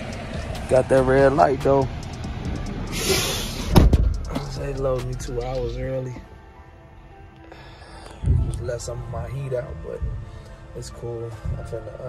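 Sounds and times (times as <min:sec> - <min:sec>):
sleet ticking: 0:00.0 - 0:03.0
truck door slamming: 0:02.2 - 0:04.7
burst of hissing: 0:02.9 - 0:03.8.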